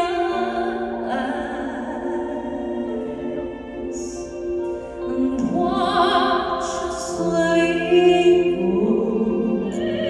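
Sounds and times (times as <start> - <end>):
woman singing: 0.0 - 4.4, 5.0 - 10.0
backing music: 0.0 - 10.0.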